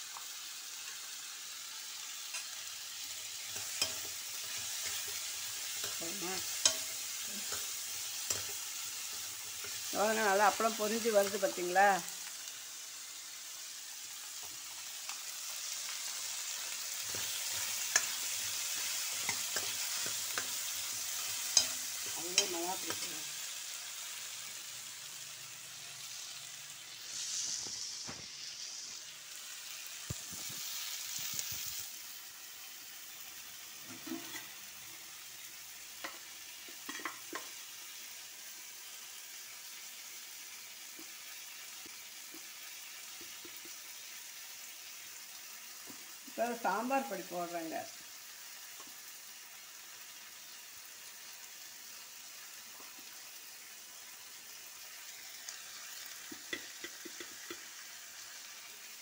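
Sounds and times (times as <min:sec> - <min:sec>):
hot oil sizzling: 0:00.0 - 0:59.0
metal ladle scraping pan: 0:03.4 - 0:09.9, 0:33.8 - 0:34.6.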